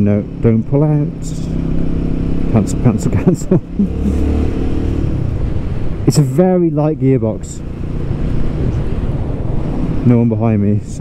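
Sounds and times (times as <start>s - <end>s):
motorcycle engine: 0.0s - 10.3s
road noise: 0.0s - 11.0s
wind buffeting microphone: 3.1s - 11.0s.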